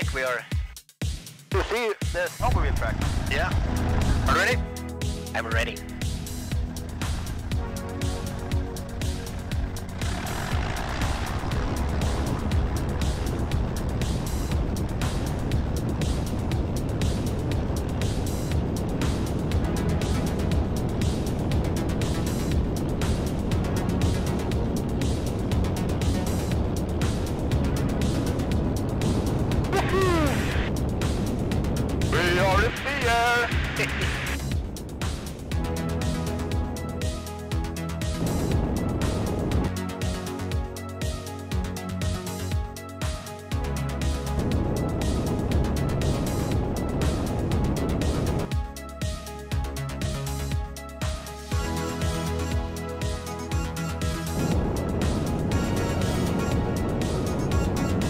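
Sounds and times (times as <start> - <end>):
music playing: 0.0 - 58.0
light aircraft engine and propeller: 2.4 - 58.0.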